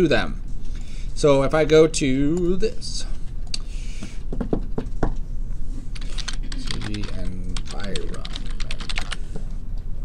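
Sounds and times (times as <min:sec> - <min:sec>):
computer keyboard typing: 0:06.0 - 0:09.2.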